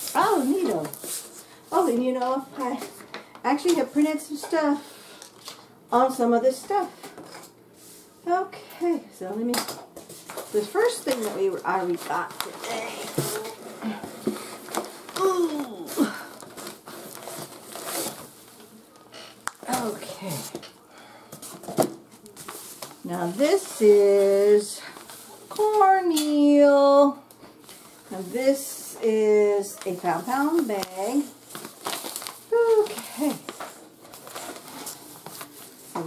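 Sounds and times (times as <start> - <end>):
paper and cardboard rustling: 0.0 - 3.0, 10.0 - 18.8, 21.4 - 26.0, 27.6 - 36.0.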